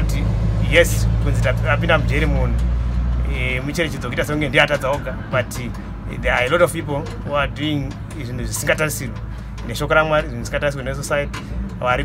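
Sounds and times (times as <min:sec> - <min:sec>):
man talking: 0:00.0 - 0:12.0
vehicle engine rumble: 0:00.0 - 0:12.0.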